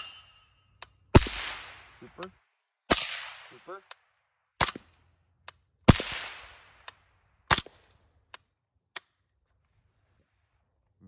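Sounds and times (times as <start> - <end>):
suppressed gunshot: 1.2 - 1.9, 2.9 - 3.5, 5.9 - 6.9.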